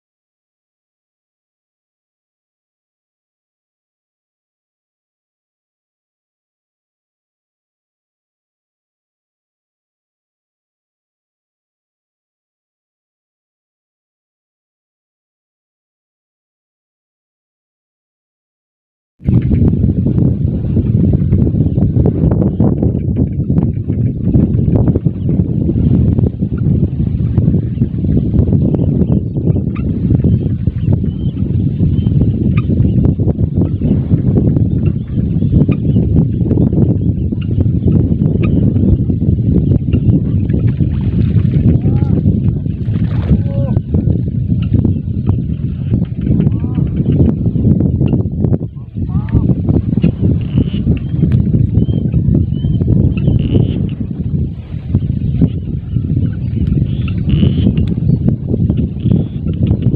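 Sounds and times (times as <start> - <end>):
wind buffeting microphone: 19.2 - 59.9.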